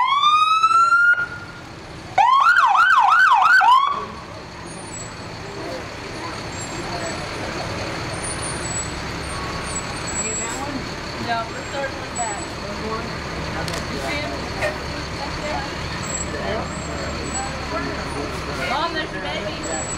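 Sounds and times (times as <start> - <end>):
fire engine siren whoop and yelp: 0.0 - 4.3
truck engine running: 0.0 - 19.9.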